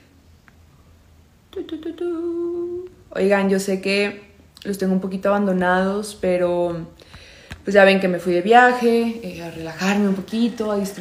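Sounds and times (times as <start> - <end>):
woman humming: 1.5 - 3.0
woman speaking syllables: 7.7 - 11.0.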